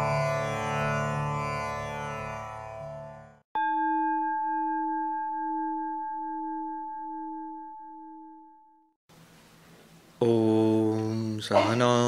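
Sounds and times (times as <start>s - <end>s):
singing bowl ringing: 3.6s - 9.0s
man chanting: 10.2s - 12.0s.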